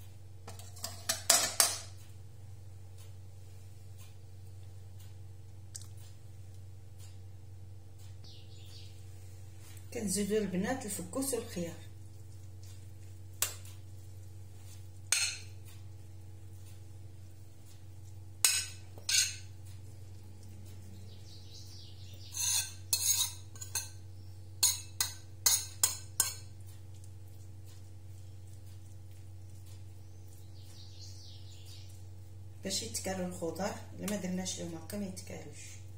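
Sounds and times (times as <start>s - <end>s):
steady low hum: 0.0s - 35.9s
metal utensil clinking on plate: 0.5s - 1.9s.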